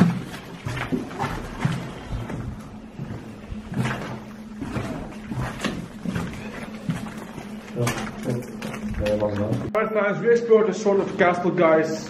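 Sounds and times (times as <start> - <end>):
footsteps crunching over rubble: 0.0 - 9.7.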